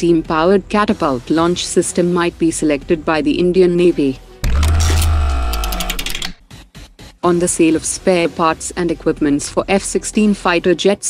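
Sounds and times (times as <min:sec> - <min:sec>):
electronic music sting: 0:04.4 - 0:06.4.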